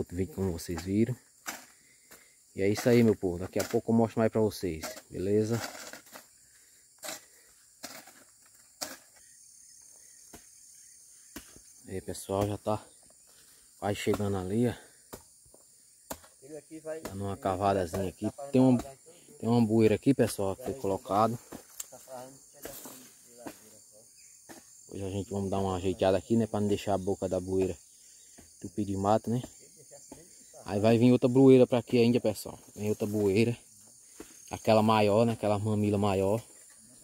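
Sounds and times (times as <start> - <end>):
faint high insect hum: 0.0 - 37.0.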